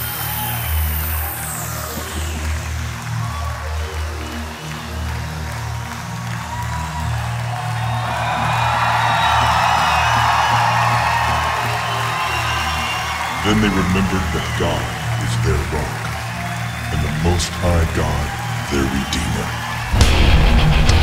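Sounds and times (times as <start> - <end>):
audience cheering and applause: 0.0 - 21.0.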